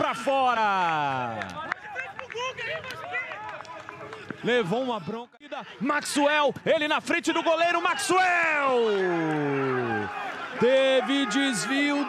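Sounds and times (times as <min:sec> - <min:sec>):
men shouting: 0:07.4 - 0:12.0.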